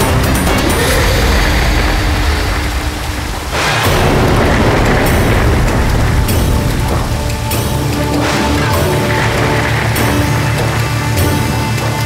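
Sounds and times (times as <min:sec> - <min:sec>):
deep heavy rumble: 0:00.0 - 0:12.0
dramatic music: 0:00.0 - 0:12.0
loud rushing noise: 0:00.0 - 0:12.0.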